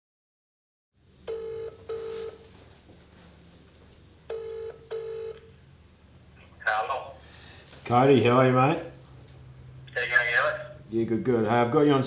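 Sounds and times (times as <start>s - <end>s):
telephone ringback tone: 1.3s - 2.4s, 4.3s - 5.4s
person speaking on phone: 6.4s - 7.2s, 9.9s - 10.8s.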